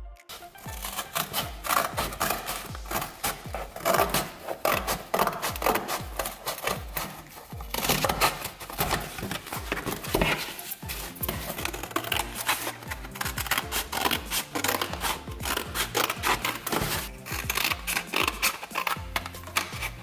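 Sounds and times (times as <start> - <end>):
background music with steady beat: 0.0 - 20.0
scissors snipping cardboard: 0.3 - 20.0.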